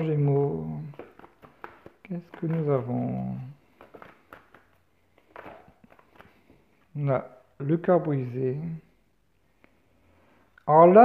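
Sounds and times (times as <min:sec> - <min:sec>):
cards being shuffled: 0:00.0 - 0:07.0.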